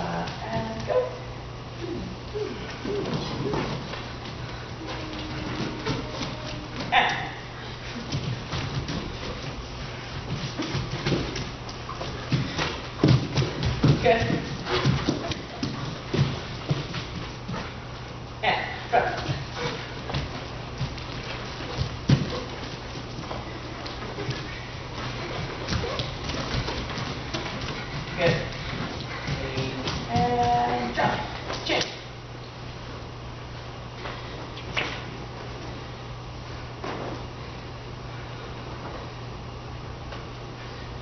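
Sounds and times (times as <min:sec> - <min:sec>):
low hum: 0:00.0 - 0:35.7
bare feet thudding on floor: 0:02.9 - 0:17.8, 0:19.0 - 0:31.6.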